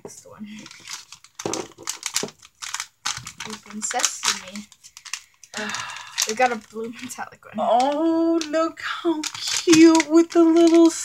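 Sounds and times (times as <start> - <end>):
plastic wrapper crackling: 0.5 - 11.0.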